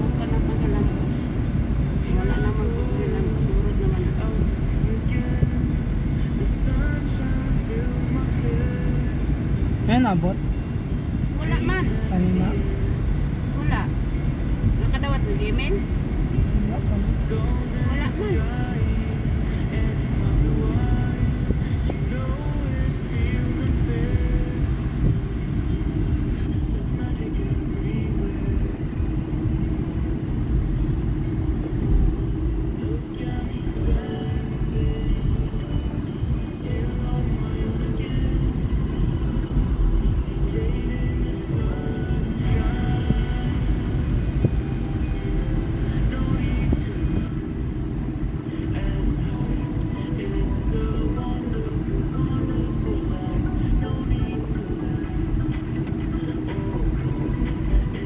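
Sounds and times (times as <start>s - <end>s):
music: 0.0s - 58.0s
road and engine rumble: 0.0s - 58.0s.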